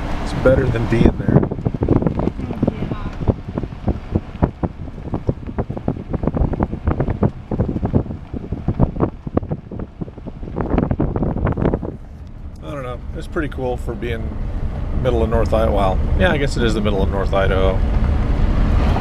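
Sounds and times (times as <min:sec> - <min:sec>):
car rumble on road: 0:00.0 - 0:19.0
wind buffeting microphone: 0:00.0 - 0:19.0.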